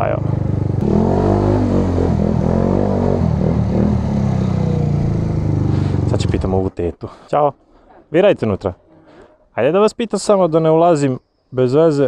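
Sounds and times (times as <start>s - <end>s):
scooter engine revving: 0.0s - 6.6s.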